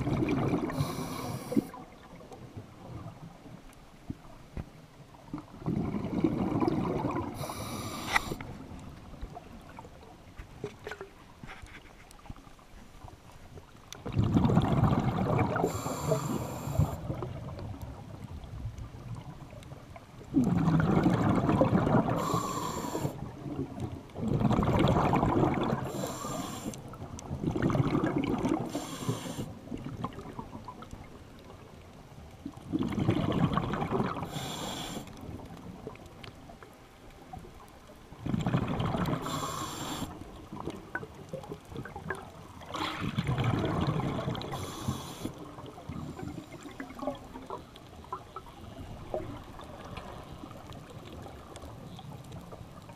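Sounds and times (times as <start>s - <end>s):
exhaled bubbles rumbling: 0.0s - 3.6s, 5.1s - 10.2s, 13.9s - 26.3s, 26.9s - 34.6s, 37.1s - 52.9s
regulator hiss: 0.8s - 1.7s, 7.4s - 8.4s, 15.7s - 17.0s, 22.2s - 23.2s, 25.9s - 26.8s, 28.7s - 29.5s, 34.3s - 35.1s, 39.2s - 40.2s.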